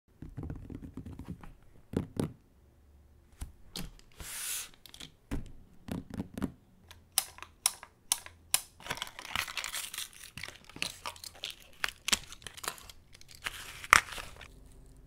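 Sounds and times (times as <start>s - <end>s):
sharp plastic clicks: 6.9s - 9.0s
paper tearing and crinkling: 8.9s - 14.6s.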